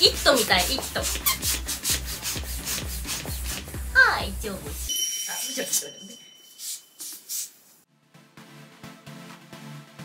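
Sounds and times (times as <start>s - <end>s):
balloon pump strokes: 0.0s - 3.8s.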